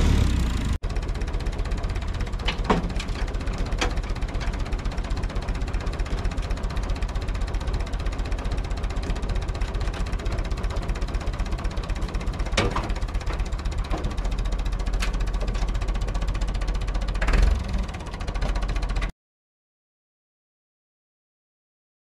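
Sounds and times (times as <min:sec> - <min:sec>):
tractor diesel engine running: 0:00.0 - 0:19.1.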